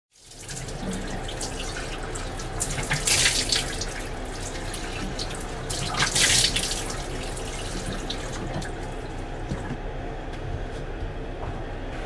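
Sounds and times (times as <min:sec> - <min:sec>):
water splashing: 0:00.2 - 0:09.1
tap running into washbasin: 0:00.2 - 0:09.8.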